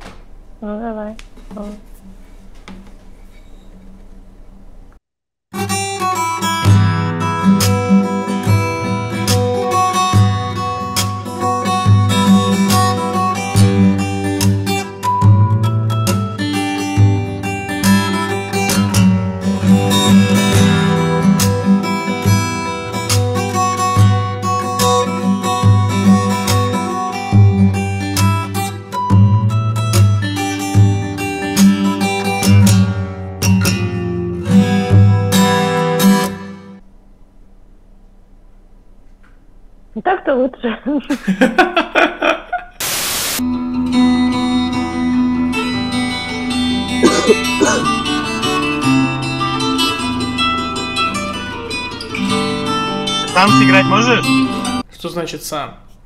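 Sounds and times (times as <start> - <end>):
fingerstyle acoustic guitar piece: 5.6 - 36.8, 43.4 - 54.9.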